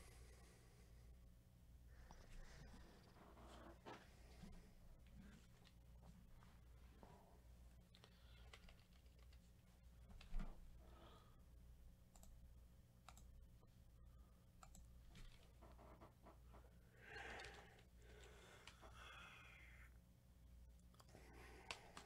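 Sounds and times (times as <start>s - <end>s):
faint clicks: 7.9s - 9.5s, 12.1s - 12.4s, 13.0s - 13.3s, 14.6s - 16.4s, 17.2s - 19.0s, 20.8s - 22.0s.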